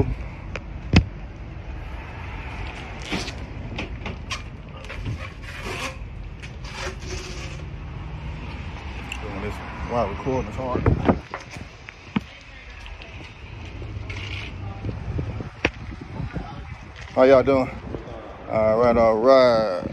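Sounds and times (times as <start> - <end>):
knocks and scuffs of handling tires: 2.4 - 7.7, 10.4 - 18.0
steady low rumble: 7.8 - 19.9.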